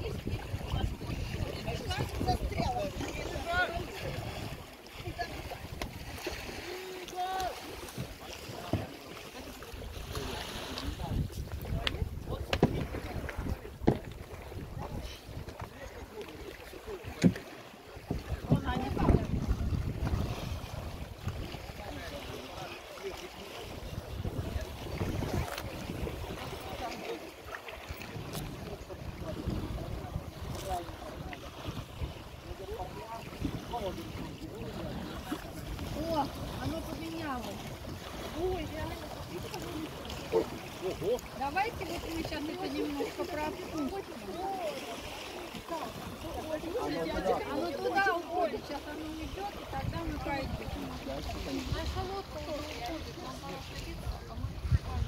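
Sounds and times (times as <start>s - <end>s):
wind buffeting microphone: 0.0s - 6.5s, 9.8s - 15.7s, 18.0s - 22.7s, 23.6s - 27.1s, 27.8s - 44.7s, 45.6s - 55.0s
faint voices: 0.0s - 55.0s.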